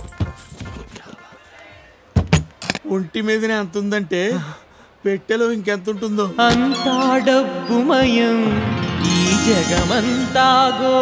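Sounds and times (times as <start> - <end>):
background music: 6.2 - 11.0.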